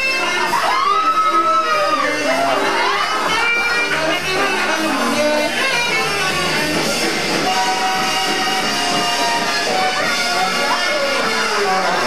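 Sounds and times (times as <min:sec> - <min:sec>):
live rock band music: 0:00.0 - 0:12.0.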